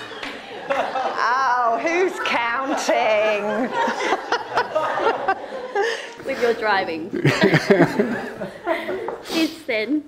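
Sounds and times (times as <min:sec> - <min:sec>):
people chuckling: 0:00.0 - 0:01.5, 0:02.2 - 0:06.5, 0:07.1 - 0:09.3.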